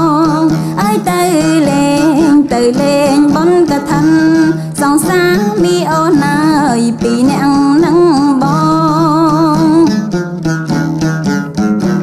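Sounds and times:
plucked lute strings: 0:00.0 - 0:12.0.

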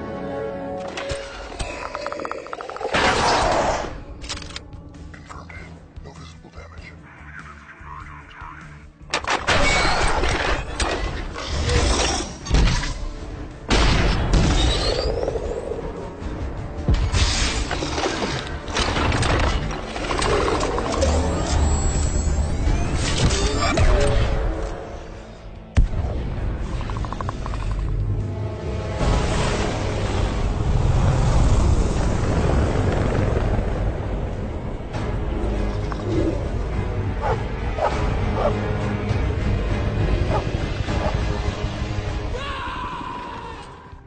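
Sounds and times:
trailer music: 0:00.0 - 0:44.0.

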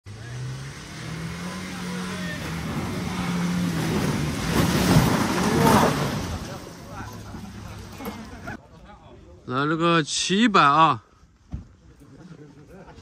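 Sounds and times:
engine working hard: 0:00.0 - 0:08.5.

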